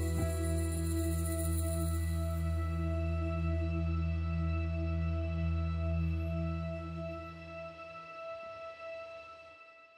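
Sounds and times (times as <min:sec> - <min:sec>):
ambient drone music: 0:00.0 - 0:09.6.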